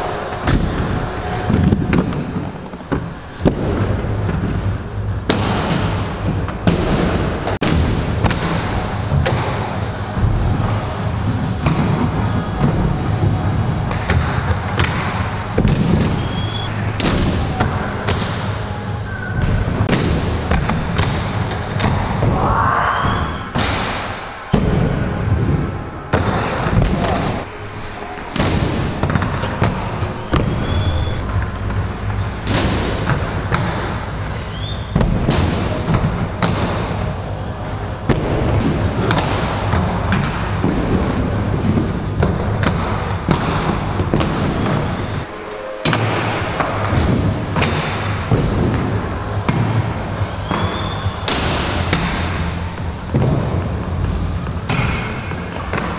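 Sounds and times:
background music: 0.0s - 55.9s
inline skates rolling: 25.2s - 55.9s.

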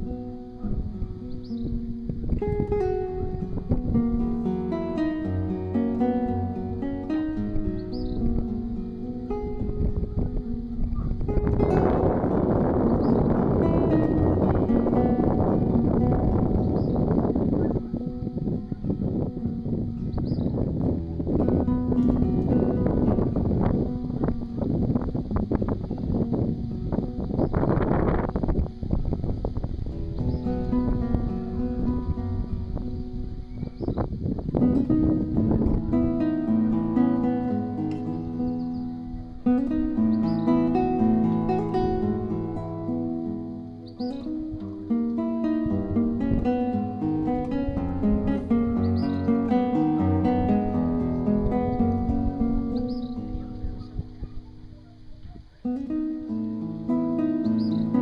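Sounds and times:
acoustic guitar notes: 0.0s - 58.0s
rough rumbling noise: 9.6s - 38.5s.

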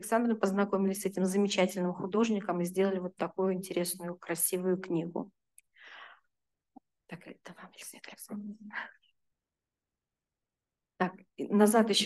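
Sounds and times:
short breath: 5.7s - 6.3s
woman whispering: 7.1s - 9.1s.

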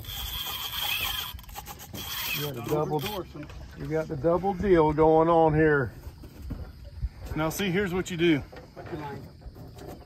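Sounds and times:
fishing reel whirring: 0.0s - 3.4s.

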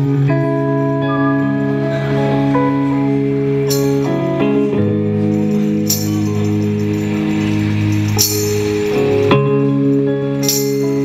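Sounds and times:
electric guitar sustained chords: 0.0s - 11.0s.

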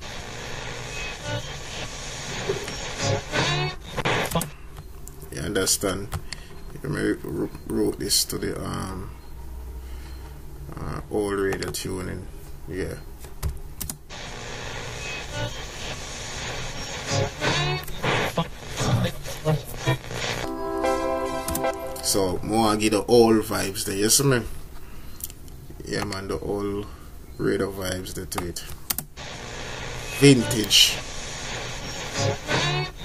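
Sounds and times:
radio static hiss: 0.0s - 4.6s, 14.1s - 20.6s, 21.8s - 24.4s, 29.2s - 33.0s
radio tuning whistles: 0.0s - 4.6s, 14.1s - 20.5s, 29.2s - 33.0s.

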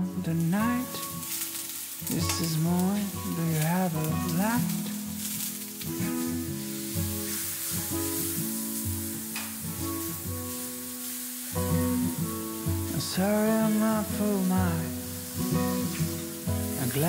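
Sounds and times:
instrumental music: 0.0s - 17.0s
mushrooms sizzling in a frying pan: 0.0s - 17.0s.

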